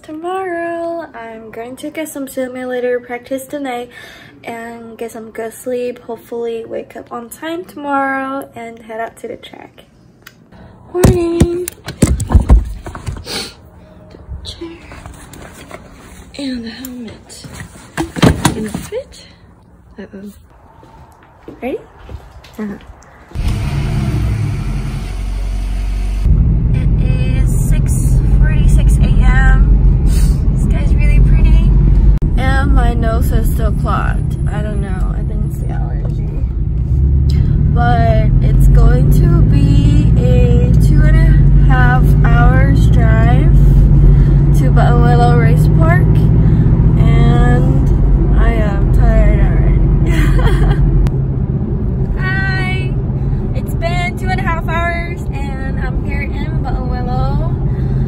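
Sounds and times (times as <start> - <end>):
car engine and road noise: 20.5 - 58.0.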